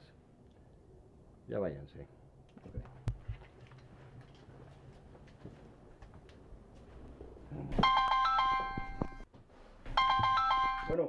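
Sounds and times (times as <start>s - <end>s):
phone ringtone chime: 7.8s - 9.2s, 10.0s - 11.0s.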